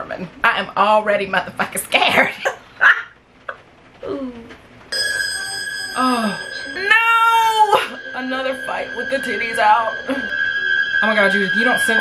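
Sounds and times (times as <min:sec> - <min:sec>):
steady high tone: 0:04.9 - 0:12.0
woman screaming: 0:06.0 - 0:08.0.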